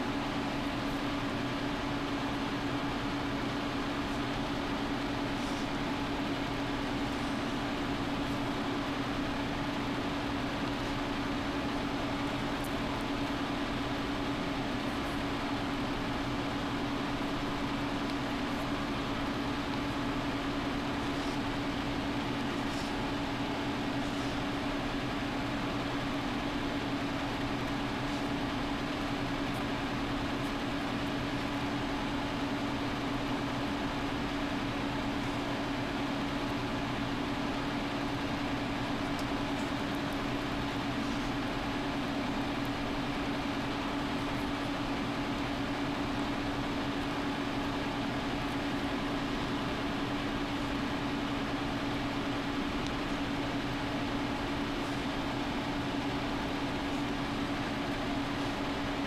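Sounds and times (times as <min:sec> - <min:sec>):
steady hum with hiss: 0:00.0 - 0:59.0.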